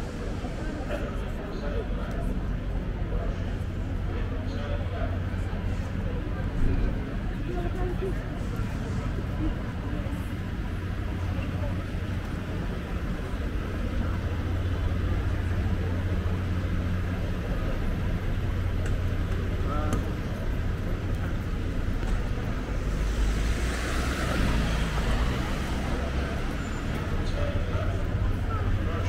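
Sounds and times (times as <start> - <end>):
passers-by talking: 0.0 - 29.0
road traffic rumble: 0.0 - 29.0.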